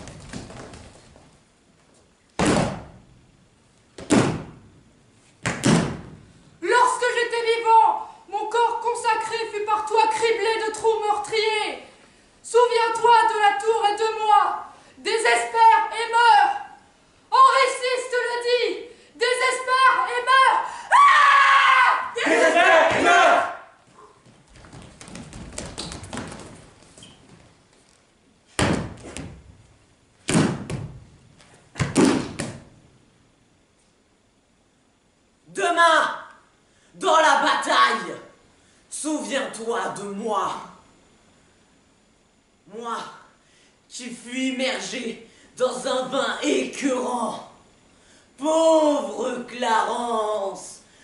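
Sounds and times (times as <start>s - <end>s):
faint shuffling footsteps on stage: 0.0s - 2.2s, 23.8s - 29.8s
loud thuds in reverberant hall: 2.4s - 3.1s, 4.0s - 4.8s, 5.4s - 6.3s, 28.5s - 29.6s, 30.2s - 32.8s
long loud screams: 19.8s - 23.7s.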